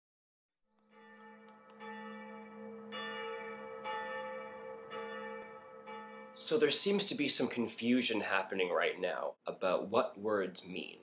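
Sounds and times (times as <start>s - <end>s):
bell-like chimes: 0.8s - 6.6s.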